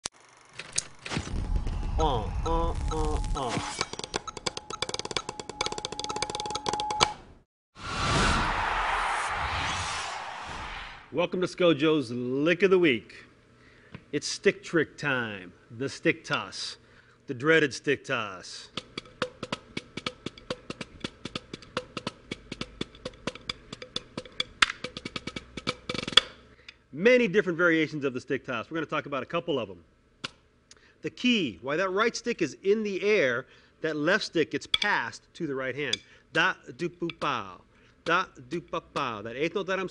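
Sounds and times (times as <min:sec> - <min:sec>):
steady rushing noise: 0:07.8 - 0:11.2
drumsticks on rubber practice pad: 0:18.7 - 0:26.4, 0:37.0 - 0:37.4.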